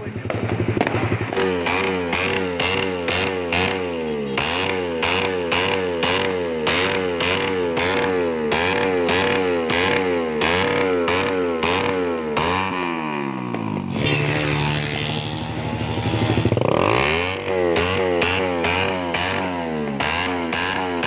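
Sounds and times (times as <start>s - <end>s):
exhaust popping cracks: 0.0s - 3.8s
motorcycle engine revving: 0.0s - 21.0s.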